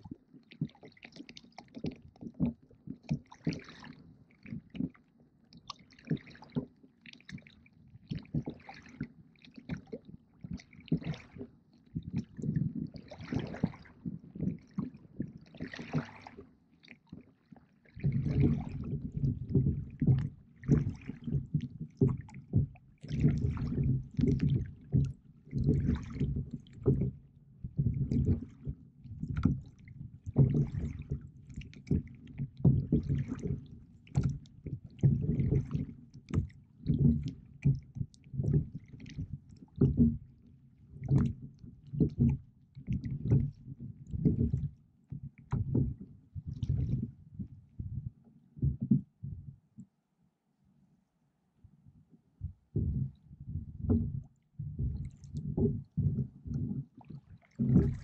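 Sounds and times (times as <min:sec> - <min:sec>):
water sloshing against boat hull: 0:00.0 - 0:50.0, 0:52.1 - 0:58.0.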